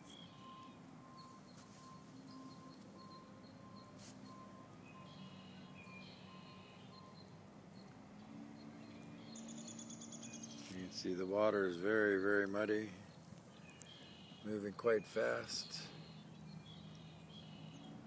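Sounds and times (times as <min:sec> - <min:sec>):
faint beeping: 0:00.0 - 0:09.5.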